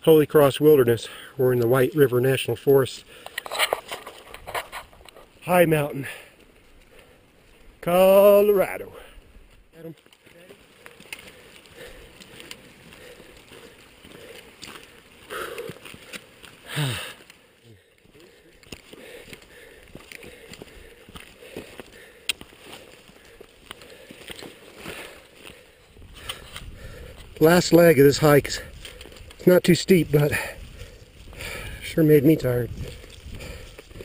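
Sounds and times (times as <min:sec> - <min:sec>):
footsteps on dirt trail: 0:00.9 - 0:34.0
backpack rustling: 0:03.2 - 0:05.4, 0:10.1 - 0:17.5, 0:18.2 - 0:27.4.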